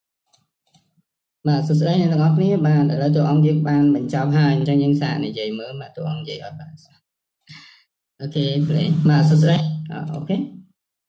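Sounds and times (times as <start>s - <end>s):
computer mouse clicks: 10.0s - 10.3s.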